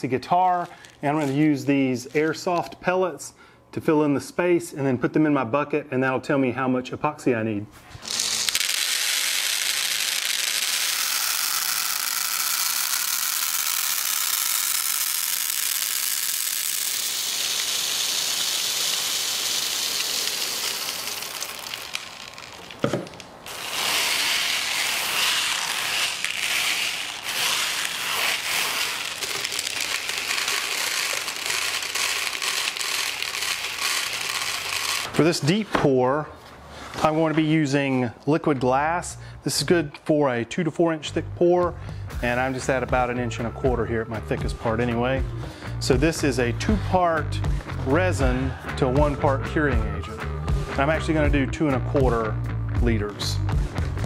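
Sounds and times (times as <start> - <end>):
plastic pellets pouring onto wood: 8.0 - 35.1
pellets clicking pushed by hand: 8.0 - 35.2.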